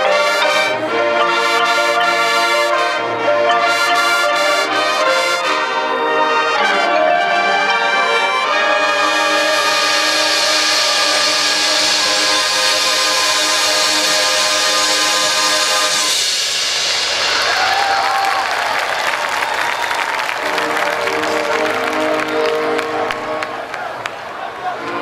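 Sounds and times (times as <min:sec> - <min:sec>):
marching band brass chord: 0:00.0 - 0:23.8
crowd cheering and applause: 0:09.0 - 0:25.0.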